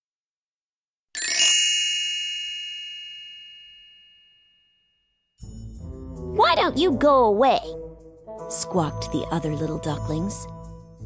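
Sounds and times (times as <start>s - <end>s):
high bright chime ringing: 1.2s - 5.1s.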